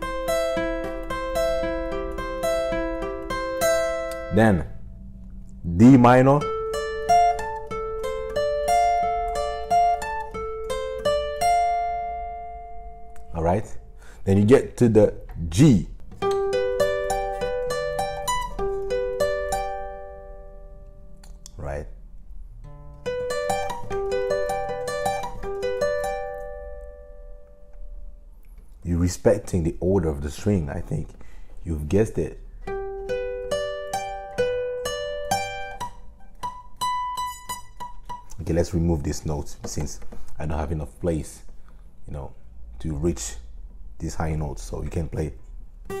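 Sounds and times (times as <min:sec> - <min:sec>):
acoustic guitar arpeggio: 0:00.0 - 0:14.2, 0:15.5 - 0:21.4, 0:22.5 - 0:28.3, 0:32.4 - 0:40.3, 0:45.8 - 0:46.0.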